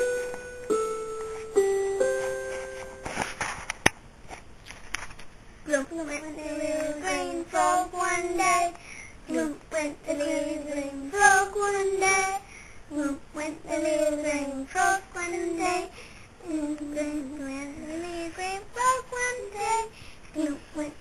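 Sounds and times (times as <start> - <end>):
girl singing: 5.6 - 21.0.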